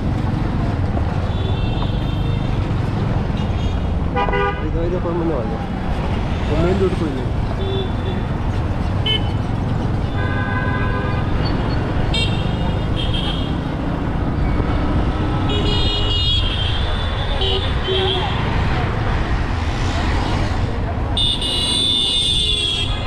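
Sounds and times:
traffic engine rumble: 0:00.0 - 0:23.0
vehicle horns honking: 0:03.4 - 0:04.7, 0:10.1 - 0:11.5, 0:15.4 - 0:18.4, 0:21.2 - 0:23.0.

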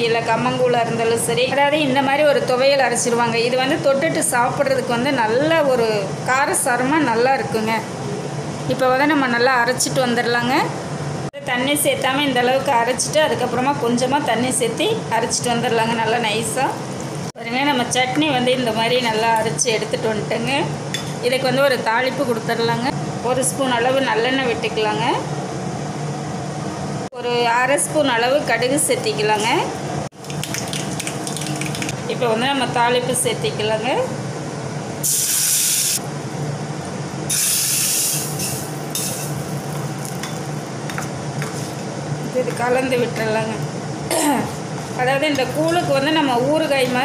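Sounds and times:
woman narrating: 0:00.0 - 0:08.0, 0:08.6 - 0:10.8, 0:11.4 - 0:16.8, 0:17.4 - 0:25.3, 0:27.1 - 0:29.8, 0:32.0 - 0:34.2, 0:42.2 - 0:47.0
hot oil sizzling: 0:35.0 - 0:36.0, 0:37.2 - 0:40.8.

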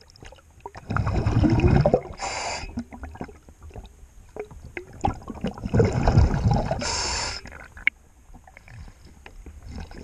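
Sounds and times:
bubbles rumbling and gurgling: 0:00.0 - 0:10.0
regulator inhalation hiss: 0:02.2 - 0:02.8, 0:06.8 - 0:07.5.

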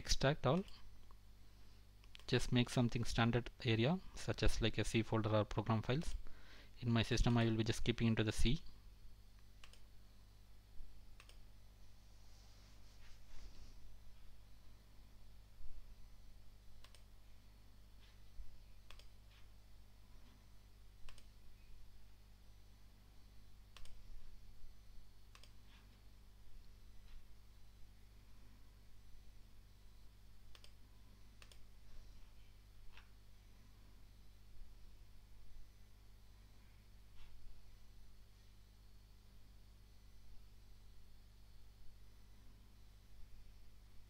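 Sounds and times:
faint steady low hum: 0:00.0 - 0:44.0
computer mouse clicks: 0:02.0 - 0:02.3, 0:09.4 - 0:09.9, 0:11.2 - 0:11.4, 0:16.8 - 0:17.1, 0:18.8 - 0:19.5, 0:21.0 - 0:21.3, 0:23.7 - 0:24.0, 0:25.3 - 0:25.8, 0:30.5 - 0:30.8, 0:31.4 - 0:31.7.

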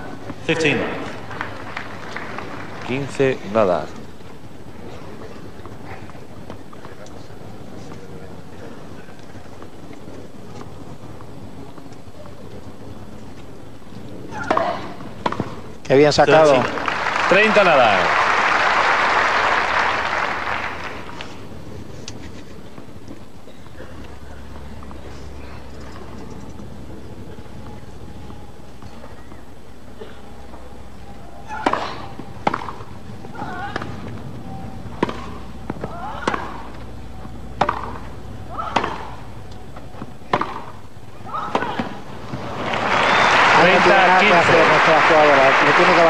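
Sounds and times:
quiet crowd ambience: 0:00.0 - 0:46.0
crowd applause: 0:00.5 - 0:03.7, 0:16.4 - 0:21.4, 0:42.3 - 0:46.0
racket striking tennis ball: 0:31.5 - 0:32.9, 0:34.9 - 0:36.7, 0:37.6 - 0:39.3, 0:40.0 - 0:42.0.

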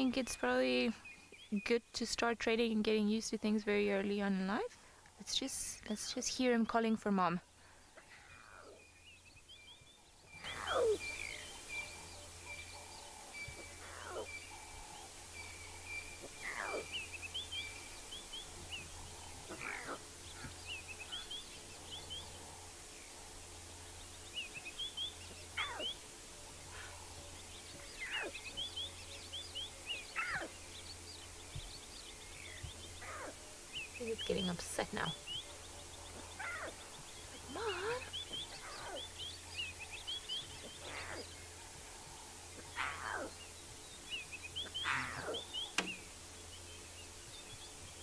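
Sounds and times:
bird chirps: 0:08.0 - 0:22.6, 0:24.0 - 0:26.0, 0:26.6 - 0:48.0
lion cub crying: 0:10.4 - 0:11.4, 0:13.8 - 0:14.3, 0:16.2 - 0:16.9, 0:19.5 - 0:20.6, 0:25.6 - 0:25.9, 0:33.0 - 0:33.4, 0:36.2 - 0:36.8, 0:37.4 - 0:39.1, 0:40.8 - 0:41.3, 0:42.6 - 0:43.3, 0:44.7 - 0:45.4.

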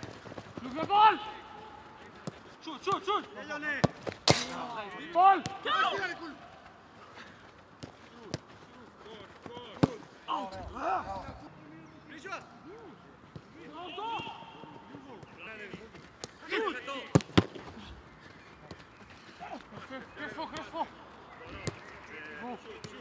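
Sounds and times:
distant players shouting: 0:00.6 - 0:03.8, 0:04.4 - 0:07.4, 0:08.1 - 0:23.0
footballs being kicked: 0:07.7 - 0:10.1.

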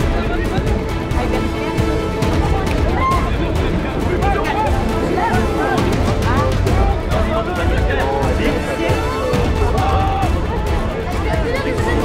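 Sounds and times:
background music with low pulse: 0:00.0 - 0:12.0
voices shouting: 0:02.4 - 0:12.0.

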